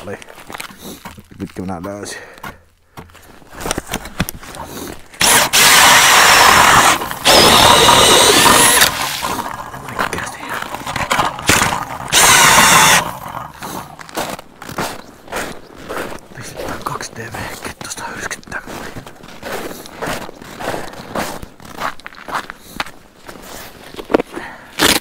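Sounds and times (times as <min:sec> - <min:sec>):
ice auger motor whine: 0:05.2 - 0:14.0.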